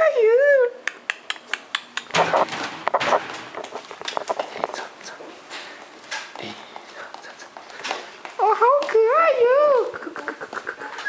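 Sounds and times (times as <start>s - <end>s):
small footsteps on hard floor: 2.3s - 9.9s.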